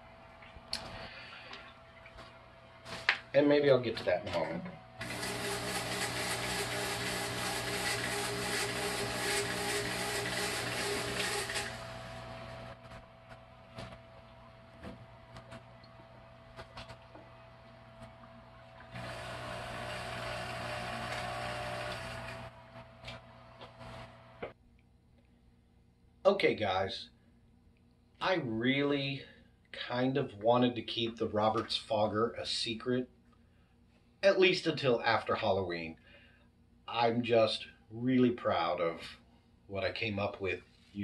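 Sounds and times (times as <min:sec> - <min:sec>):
electric hum: 0:00.0 - 0:24.6
fog machine pump buzzing: 0:04.4 - 0:24.6.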